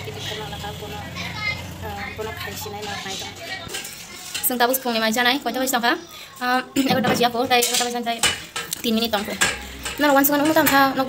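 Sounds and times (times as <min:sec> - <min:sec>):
pots and pans clattering: 0:02.3 - 0:05.7, 0:06.7 - 0:11.0.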